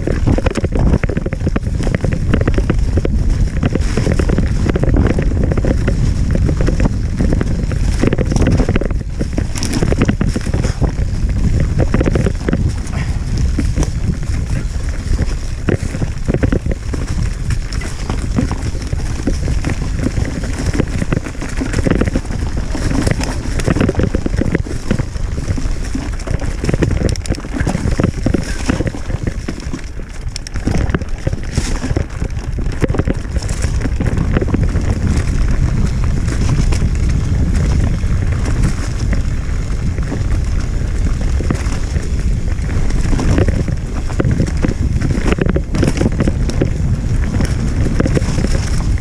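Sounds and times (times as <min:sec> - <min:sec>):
bike rattling and knocking: 0:00.0 - 0:49.0
bike tyres rumbling on dirt: 0:00.0 - 0:49.0
wind on microphone: 0:00.0 - 0:49.0.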